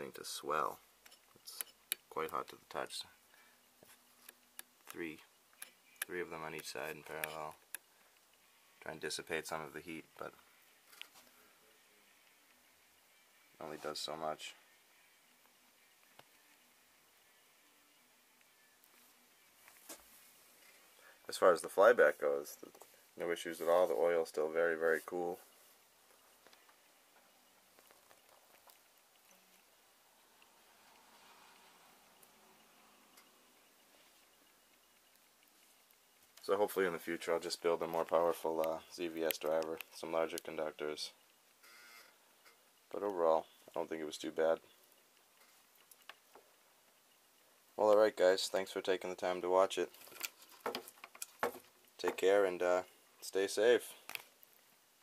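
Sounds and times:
faint clicks and taps: 1.0s - 8.4s, 15.4s - 16.6s, 22.6s - 23.0s, 26.0s - 29.7s, 33.1s - 40.6s, 44.6s - 48.1s, 49.8s - 52.4s, 54.0s - 54.7s.

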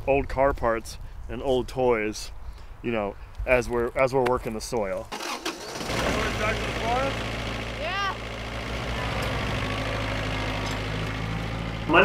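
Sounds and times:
engine idling: 5.2s - 12.0s.

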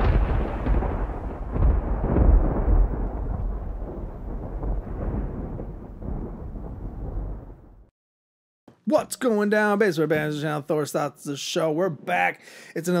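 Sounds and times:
deep thunder rumble: 0.0s - 7.9s.

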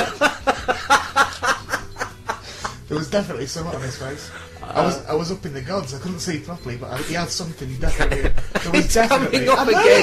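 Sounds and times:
man laughing: 0.0s - 2.7s, 7.0s - 9.2s.

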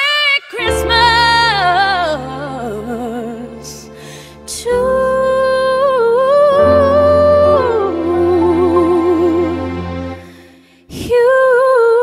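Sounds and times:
soft low accompaniment chord: 0.7s - 10.6s
woman singing long note: 4.5s - 9.9s.

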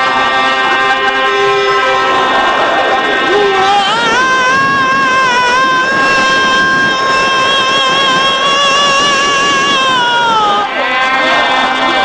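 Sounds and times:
man singing long high note: 0.0s - 12.0s.

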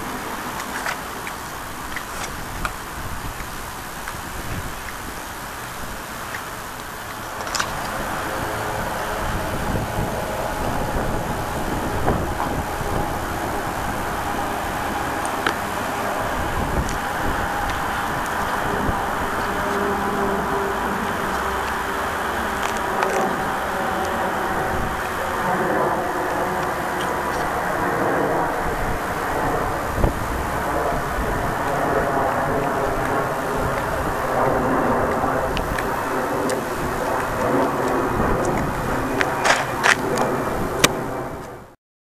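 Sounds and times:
roadside traffic: 0.0s - 41.8s.

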